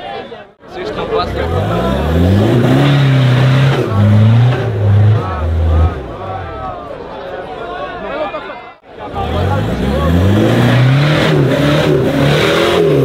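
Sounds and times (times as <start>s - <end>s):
crowd shouting: 0.0s - 11.8s
diesel engine revving hard: 0.9s - 6.7s, 9.0s - 13.0s.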